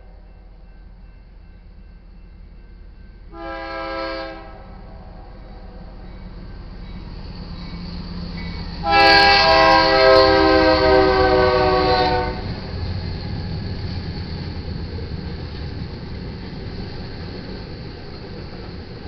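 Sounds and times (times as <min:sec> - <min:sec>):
rumble of approaching train: 0:00.0 - 0:19.0
train air horn blasts: 0:03.3 - 0:05.8, 0:08.8 - 0:12.6.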